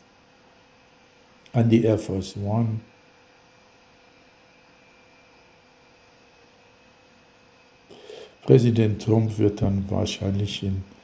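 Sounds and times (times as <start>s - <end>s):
faint hum and hiss: 0.0s - 11.0s.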